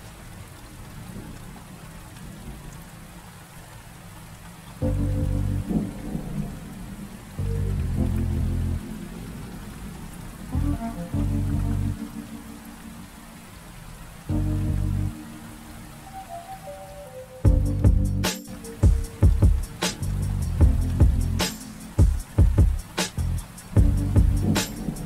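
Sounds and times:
steady rain: 0.0s - 25.0s
low sustained music notes: 4.8s - 22.0s.

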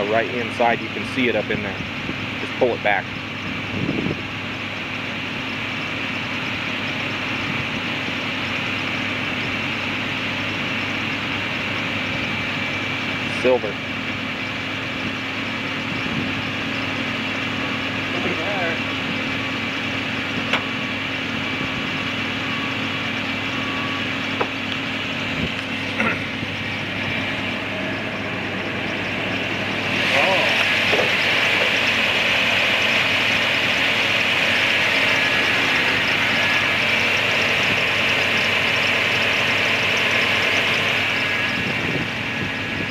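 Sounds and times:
car engine idling: 0.0s - 42.9s.

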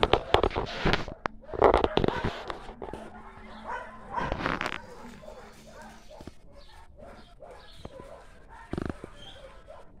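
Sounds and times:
dogs barking: 0.0s - 10.0s.

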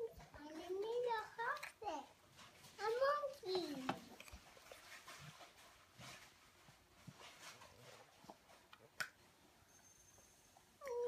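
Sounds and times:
faint soft rustles: 0.0s - 10.8s.

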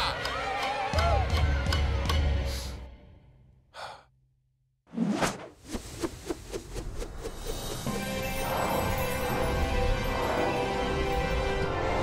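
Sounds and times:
person inhaling: 3.7s - 4.1s.

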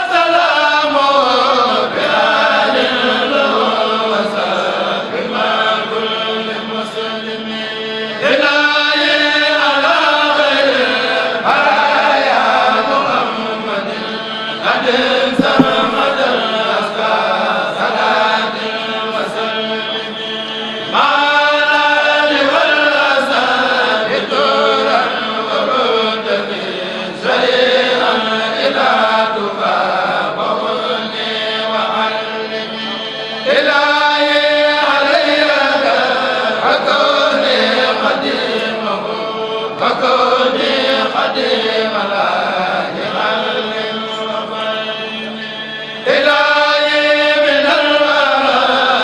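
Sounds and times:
men chanting through microphones: 0.0s - 49.0s.

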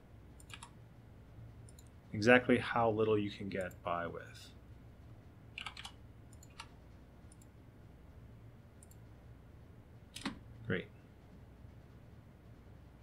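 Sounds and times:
computer mouse clicking: 0.4s - 0.8s, 1.6s - 2.0s, 5.6s - 7.5s, 8.8s - 9.1s, 10.1s - 10.4s.

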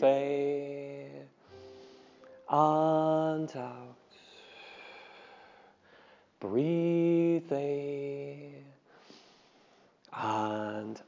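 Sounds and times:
breath out through nose: 1.5s - 2.4s.

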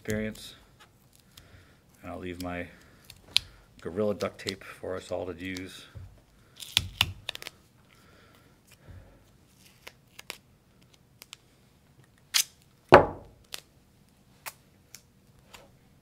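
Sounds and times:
duct tape ripping: 9.5s - 10.4s, 12.3s - 12.6s
tape roll knocking on wooden bench: 13.0s - 13.3s.

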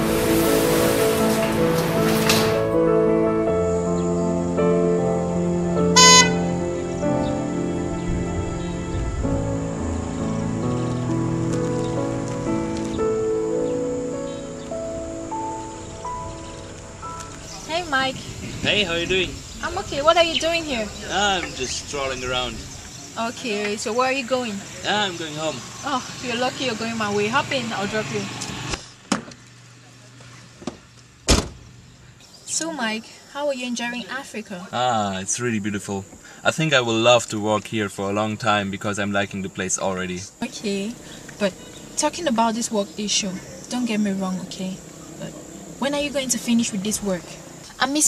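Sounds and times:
soft background music: 0.0s - 18.9s
short car horn beep: 6.0s - 6.5s
car door clicks: 30.6s - 31.7s
car door shutting thump: 30.6s - 31.7s.

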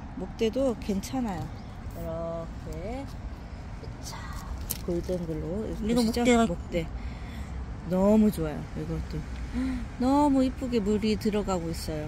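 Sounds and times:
person speaking: 3.8s - 6.9s.

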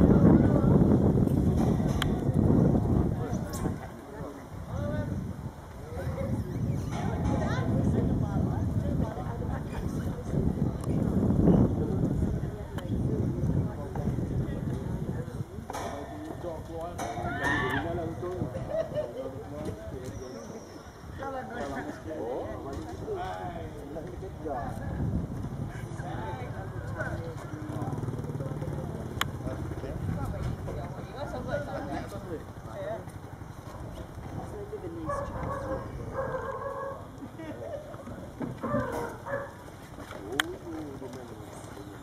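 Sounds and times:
wind rumble on microphone: 0.0s - 20.3s, 21.0s - 42.0s
people talking: 0.0s - 39.4s, 40.0s - 42.0s.

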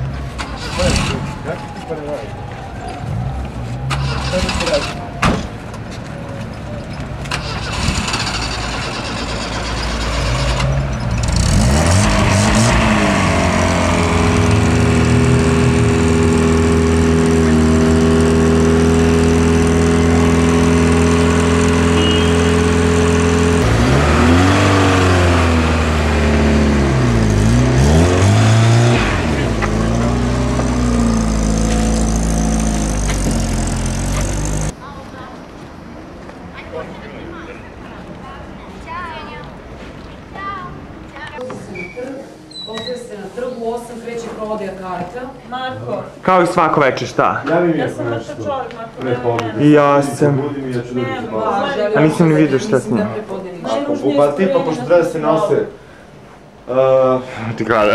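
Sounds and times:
vehicle engine running: 7.2s - 34.8s.

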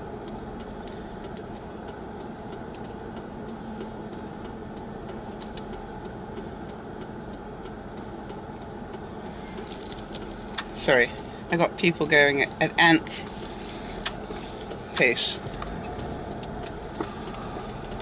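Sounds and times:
engine and road noise hum: 0.0s - 18.0s.

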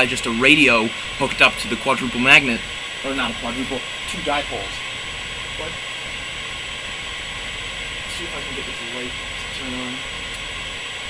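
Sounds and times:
faint high-pitched whine: 0.0s - 11.0s
steady hiss: 0.0s - 11.0s.

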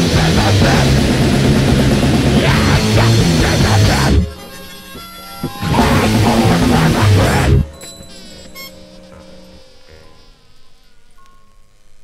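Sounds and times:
low steady tones: 0.0s - 12.0s
faint high-pitched buzzing whine: 7.6s - 12.0s.

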